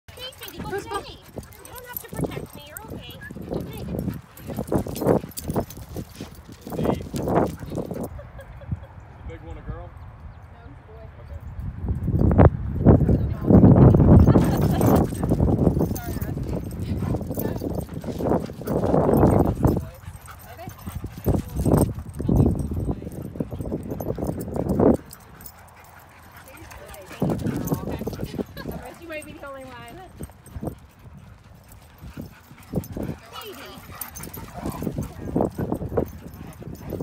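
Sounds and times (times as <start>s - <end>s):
people's voices: 0.1s - 9.7s, 13.0s - 37.0s
dogs barking: 14.2s - 37.0s.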